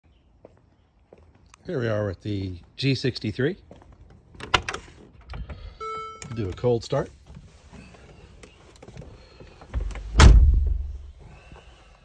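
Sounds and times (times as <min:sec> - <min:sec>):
electronic beep: 0:05.8 - 0:06.5.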